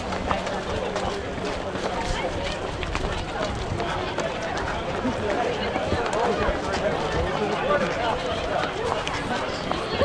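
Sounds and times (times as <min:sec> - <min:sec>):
footsteps: 0:00.0 - 0:10.0
people chattering: 0:00.0 - 0:10.0.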